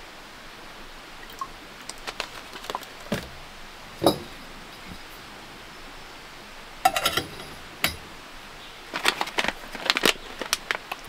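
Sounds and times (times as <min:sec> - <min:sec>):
coffee bag crinkling: 0:01.8 - 0:03.4, 0:08.8 - 0:11.0.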